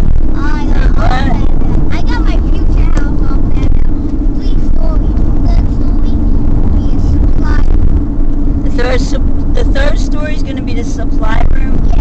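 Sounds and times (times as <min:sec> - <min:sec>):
car engine and road rumble: 0:00.0 - 0:12.0
person speaking indistinctly: 0:00.4 - 0:07.7.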